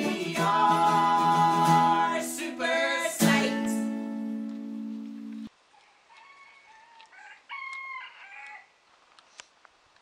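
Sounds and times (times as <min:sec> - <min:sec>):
rooster crowing: 0:05.7 - 0:08.8.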